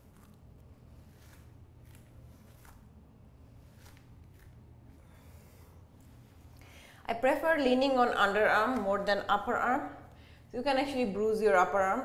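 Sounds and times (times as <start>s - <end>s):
soft rustles: 0.0s - 6.6s
faint room hum: 0.0s - 12.0s.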